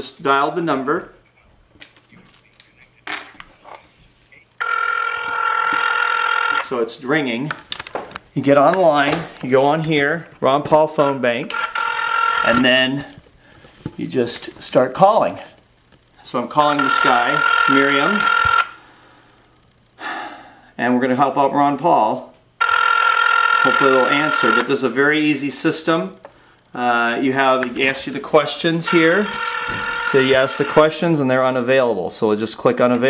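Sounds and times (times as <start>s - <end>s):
phone ringback tone: 4.6s - 6.7s, 11.5s - 13.0s, 16.6s - 18.8s, 22.6s - 24.9s, 28.8s - 31.1s.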